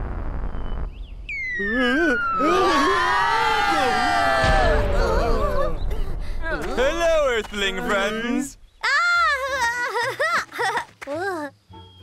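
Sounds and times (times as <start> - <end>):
cartoon falling whistle: 0.6 - 5.9
cartoon voices shouting: 2.1 - 5.8.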